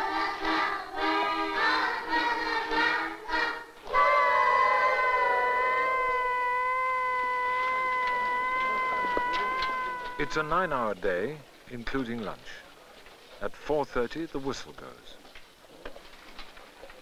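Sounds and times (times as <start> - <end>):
children singing: 0.0 - 10.6
long whistle blast: 3.9 - 10.6.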